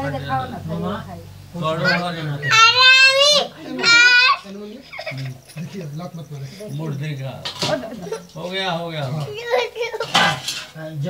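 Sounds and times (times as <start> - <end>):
man talking: 1.6 - 2.8, 5.1 - 7.6, 8.2 - 9.3
metal utensils clinking: 6.7 - 10.9.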